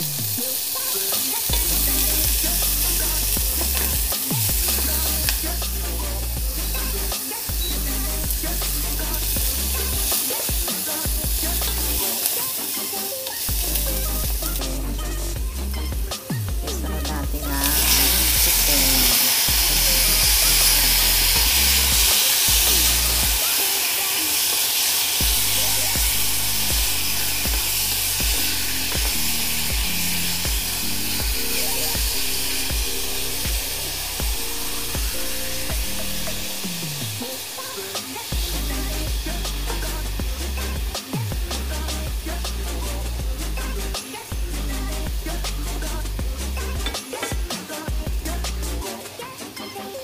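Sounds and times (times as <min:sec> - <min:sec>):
chicken sizzling in pan: 0:00.0 - 0:15.2, 0:17.4 - 0:44.4, 0:45.5 - 0:47.9
background music with bass beat: 0:00.0 - 0:23.6, 0:25.2 - 0:50.0.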